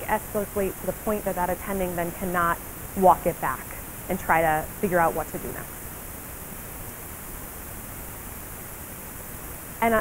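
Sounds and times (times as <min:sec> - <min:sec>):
woman speaking: 0:00.0 - 0:05.7
steady background hiss: 0:00.0 - 0:10.0.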